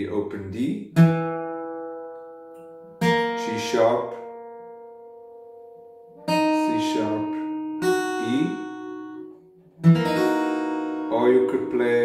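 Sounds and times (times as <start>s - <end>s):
acoustic guitar chord ringing: 0.9s - 12.0s.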